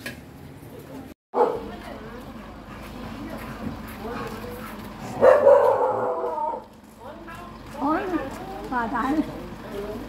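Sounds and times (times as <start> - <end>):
people's voices: 0.8 - 10.0
dog barking loudly: 1.4 - 1.8, 5.0 - 6.6.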